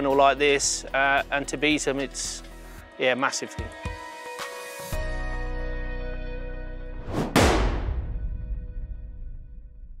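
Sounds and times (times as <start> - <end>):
short whoosh: 7.0 - 8.2
heavy boom hit with ringing tail: 7.3 - 10.0.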